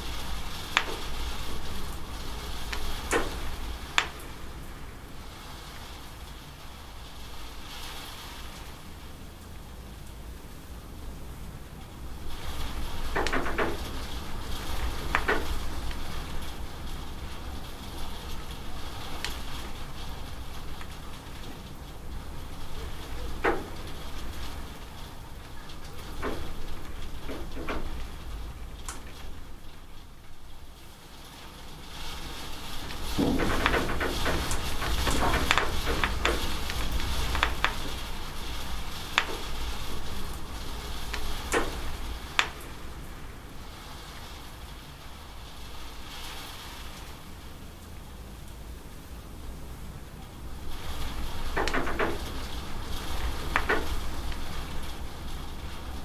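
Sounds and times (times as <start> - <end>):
rain hissing: 0.0 - 56.0
raindrops splashing: 0.0 - 56.0.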